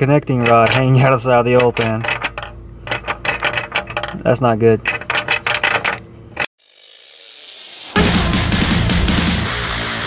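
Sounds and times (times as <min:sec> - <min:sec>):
light clicks and rattles: 0:00.0 - 0:06.5.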